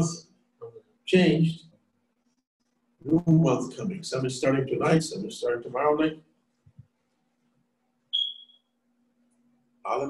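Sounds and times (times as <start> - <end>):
high-pitched ping: 8.2 - 8.6.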